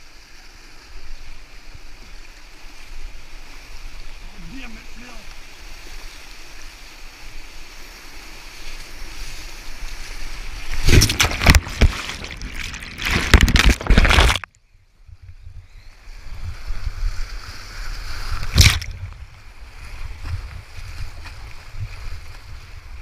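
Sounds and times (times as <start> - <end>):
whitewater rushing: 9.7 - 14.5
water splash: 9.9 - 14.6, 17.3 - 21.6.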